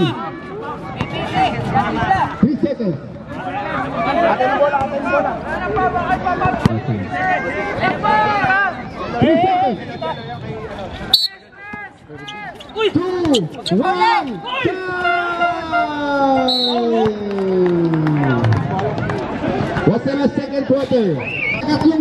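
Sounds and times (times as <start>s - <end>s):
voices calling out: 3.6s - 19.9s.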